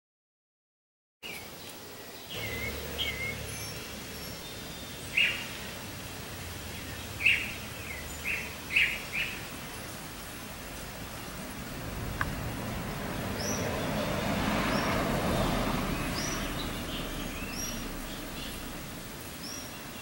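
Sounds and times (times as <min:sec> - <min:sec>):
birds chirping: 0:01.2 - 0:20.0.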